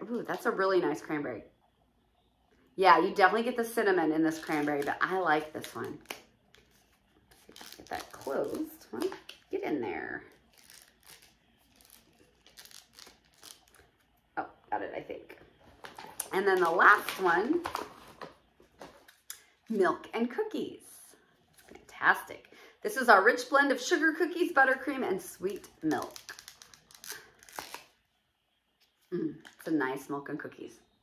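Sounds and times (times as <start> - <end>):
packaging rustling and crinkling: 4.4 - 9.5, 10.3 - 14.1, 15.6 - 19.3, 25.4 - 27.9.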